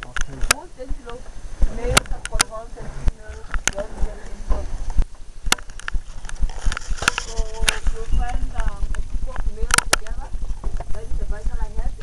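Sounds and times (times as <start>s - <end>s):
people talking quietly: 0.0s - 5.0s, 6.6s - 12.0s
low fluttering rumble: 0.0s - 12.0s.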